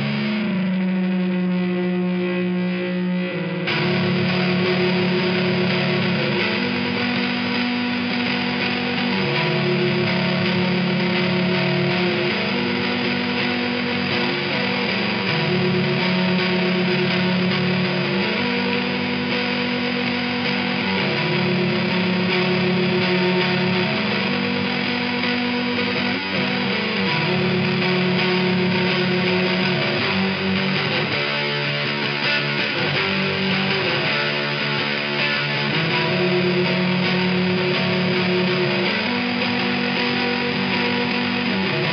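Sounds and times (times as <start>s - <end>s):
distorted electric guitar chords: 0.0s - 41.9s.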